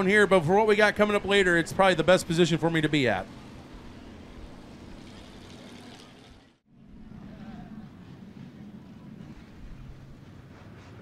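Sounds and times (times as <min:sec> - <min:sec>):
faint race car engines rumbling: 0:00.0 - 0:11.0.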